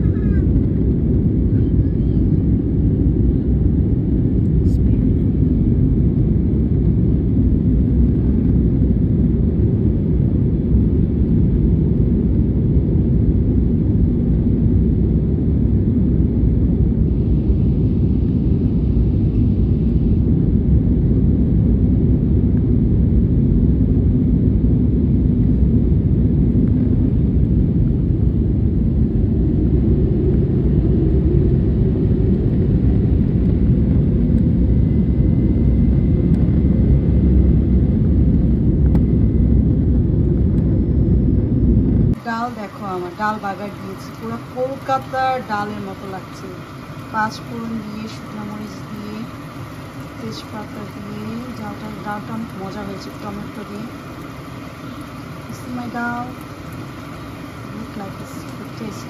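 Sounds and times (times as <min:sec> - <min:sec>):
airplane cabin rumble: 0:00.0 - 0:59.0.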